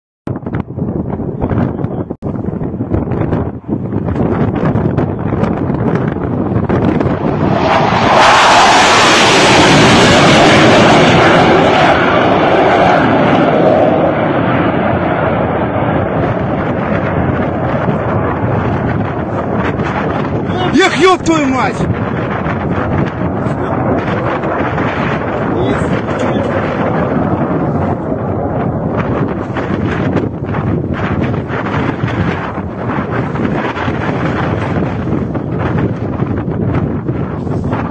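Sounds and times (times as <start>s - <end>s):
wind buffeting microphone: 0.3s - 37.9s
jet aircraft roar passing low: 0.4s - 37.9s.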